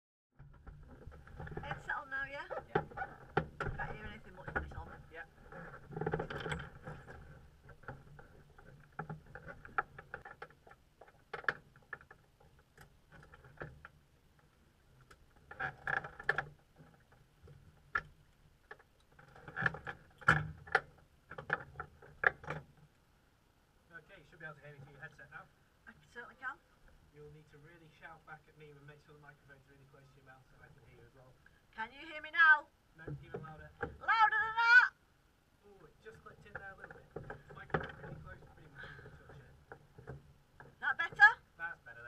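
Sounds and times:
microphone handling clicks and knocks: 0.4s - 22.9s, 36.2s - 41.4s
faint low hum: 0.4s - 42.0s.

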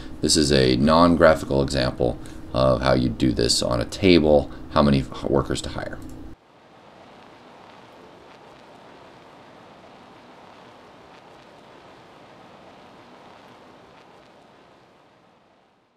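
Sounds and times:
faint microphone hiss: 0.0s - 15.9s.

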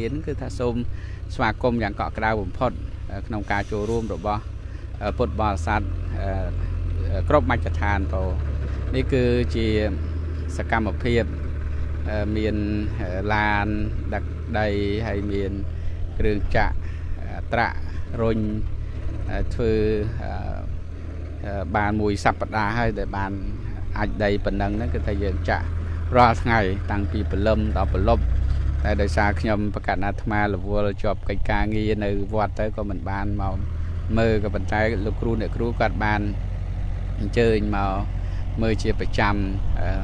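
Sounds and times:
man speaking into a microphone: 0.0s - 11.4s, 12.0s - 18.7s, 19.3s - 20.7s, 21.4s - 28.2s, 28.8s - 36.4s, 37.2s - 40.0s
backhoe loader engine running: 0.0s - 40.0s.

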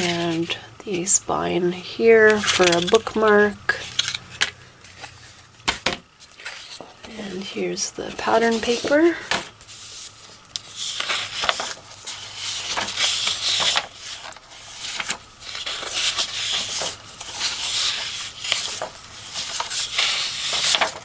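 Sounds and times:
paper sheets rustling: 2.1s - 7.0s, 8.1s - 21.0s.

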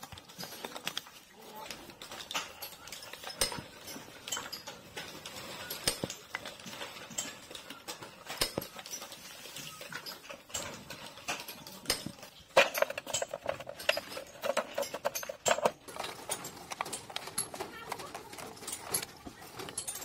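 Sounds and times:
cardboard tubes clicking and knocking: 0.0s - 20.0s.

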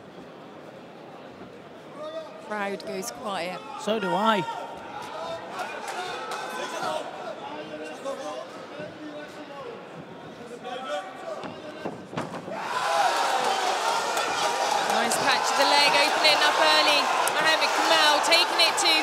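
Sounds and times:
crowd shouting and cheering: 3.6s - 7.5s, 12.5s - 19.0s
murmur of crowd voices: 13.5s - 19.0s.

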